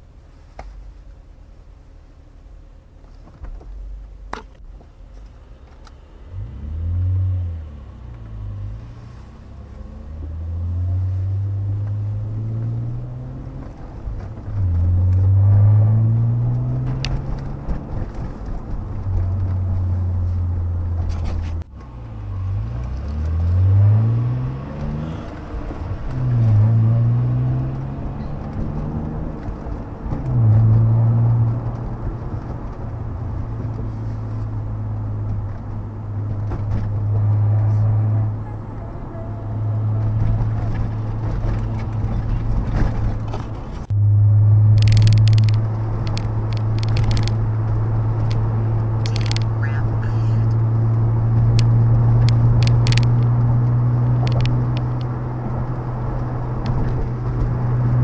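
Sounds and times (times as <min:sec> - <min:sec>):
car engine accelerating: 0:05.1 - 0:58.0.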